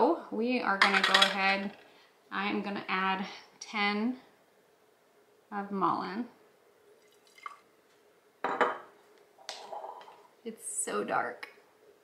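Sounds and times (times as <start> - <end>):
glassware clinking: 8.4 - 8.9.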